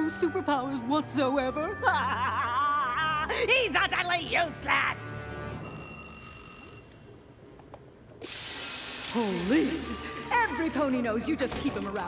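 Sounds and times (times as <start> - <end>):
high bell-like ringing tone: 5.6 - 6.9.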